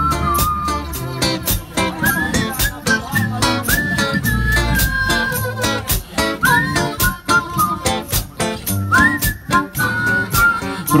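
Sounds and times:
harmonica playing: 0:00.0 - 0:11.0
rhythmic accompaniment: 0:00.0 - 0:11.0.

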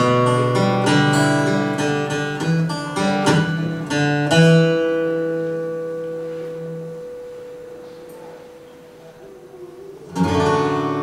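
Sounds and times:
acoustic guitar and piano: 0:00.0 - 0:11.0.

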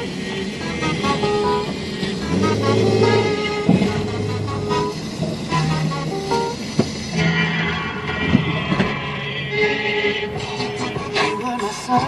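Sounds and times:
city street traffic: 0:00.0 - 0:12.0
low-pitched vehicle horn: 0:00.7 - 0:06.6.

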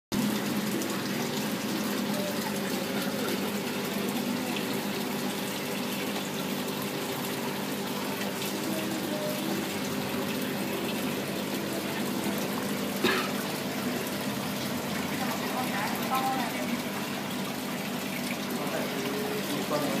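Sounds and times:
aquarium bubbling: 0:00.1 - 0:20.0
pump humming: 0:00.1 - 0:20.0.

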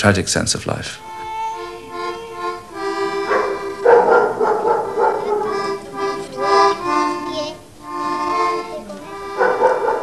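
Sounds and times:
accordion playing held notes: 0:01.0 - 0:10.0.

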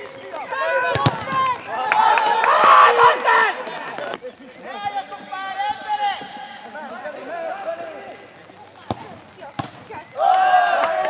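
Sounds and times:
football kick thud: 0:00.9 - 0:01.4, 0:08.9 - 0:10.0.

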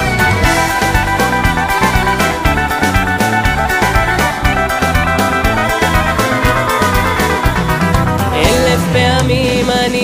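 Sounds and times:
sustained melodic instruments: 0:00.0 - 0:09.2
steady drum beat: 0:00.0 - 0:09.9.

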